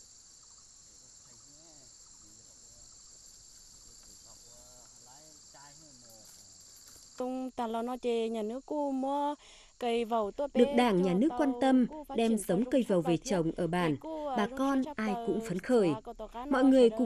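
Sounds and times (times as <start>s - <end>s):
insects chorus: 0.0s - 17.0s
woman speaking close up: 7.2s - 17.0s.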